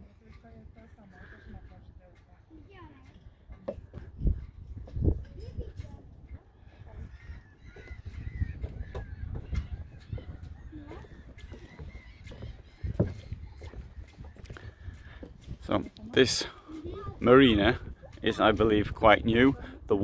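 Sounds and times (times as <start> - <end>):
faint distant voices and calls: 0.0 - 20.0
wind buffeting microphone: 0.0 - 20.0.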